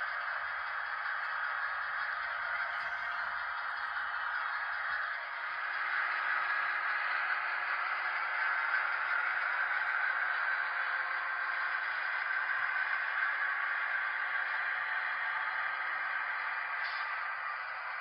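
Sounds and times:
model train running on track: 0:00.0 - 0:18.0.

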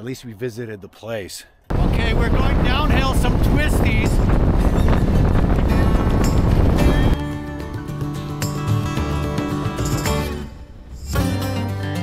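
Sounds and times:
wind rushing over microphone: 0:01.7 - 0:07.2
background music: 0:04.0 - 0:12.0
motorcycle engine: 0:04.1 - 0:11.6.

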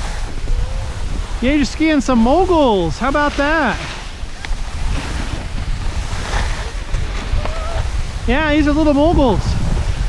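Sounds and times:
skis sliding over snow: 0:00.0 - 0:10.0
wind rumbling on microphone: 0:00.0 - 0:10.0.

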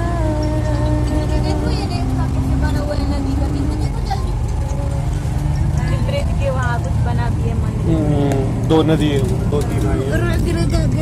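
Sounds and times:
bus engine rumbling: 0:00.0 - 0:11.0
voices: 0:00.0 - 0:11.0.

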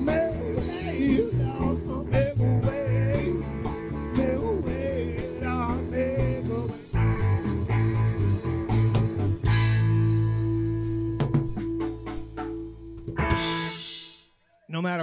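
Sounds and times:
person singing: 0:00.0 - 0:07.0
blues-rock band playing: 0:00.0 - 0:14.2.

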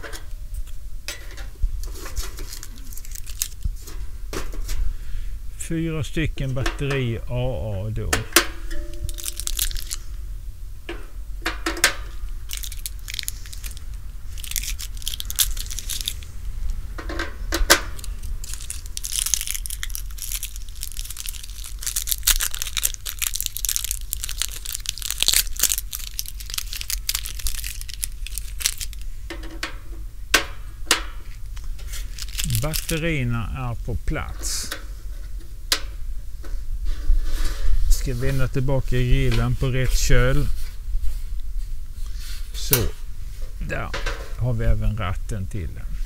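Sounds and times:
steady low rumble: 0:00.3 - 0:46.0
rustling: 0:01.8 - 0:05.0, 0:08.5 - 0:10.1, 0:12.3 - 0:17.0, 0:17.8 - 0:29.3, 0:31.2 - 0:33.2, 0:36.3 - 0:44.4.

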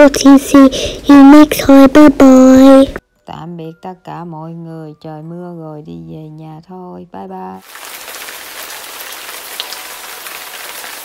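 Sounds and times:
rain on hard surfaces: 0:07.6 - 0:11.0.

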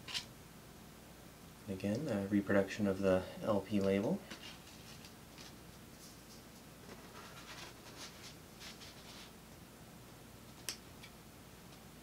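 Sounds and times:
paper scraping and rustling on card: 0:04.3 - 0:09.4.

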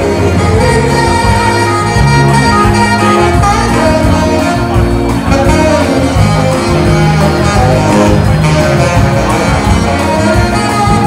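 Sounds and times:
bass line: 0:00.0 - 0:11.0
electric guitar: 0:00.0 - 0:11.0
live soul band playing: 0:00.0 - 0:11.0.

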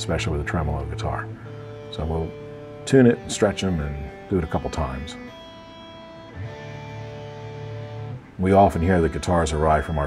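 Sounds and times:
electric guitar chord ringing: 0:00.0 - 0:10.0
electric guitar note ringing: 0:00.0 - 0:10.0.

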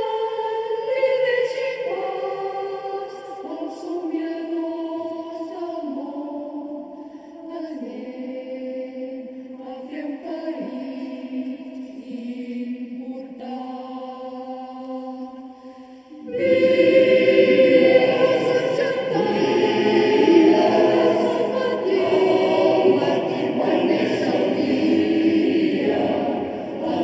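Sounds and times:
mixed choir singing: 0:00.0 - 0:27.0.

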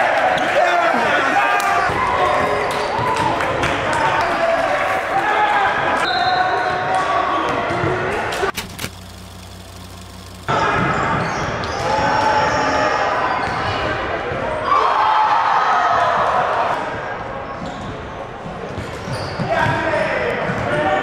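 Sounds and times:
voices of players and onlookers: 0:00.0 - 0:08.5
low hum: 0:08.5 - 0:10.5.

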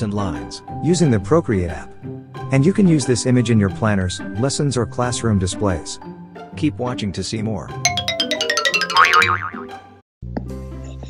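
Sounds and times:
light background music: 0:00.0 - 0:09.4
cartoon boing: 0:07.9 - 0:09.7.

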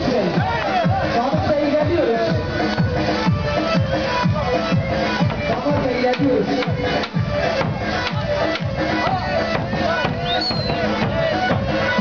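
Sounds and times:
bass drum beaten with mallet: 0:04.8 - 0:12.0.

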